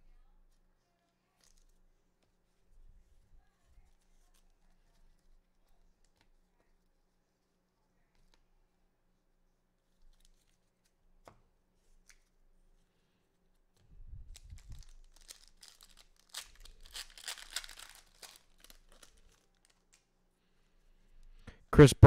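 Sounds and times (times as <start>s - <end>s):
wrapper tearing and crinkling: 14.3s - 20.1s.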